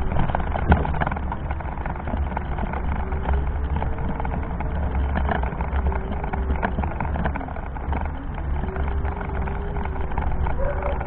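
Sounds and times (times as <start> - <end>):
faint steady whine: 0.0 - 11.0
small rattles and clicks: 0.0 - 11.0
wheelchair rolling over brick paving: 0.0 - 11.0.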